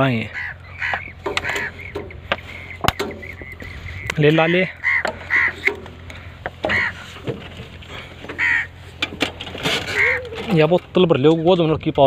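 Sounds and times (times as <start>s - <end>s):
bird calling: 0.0s - 11.6s
low steady hum: 0.0s - 12.0s.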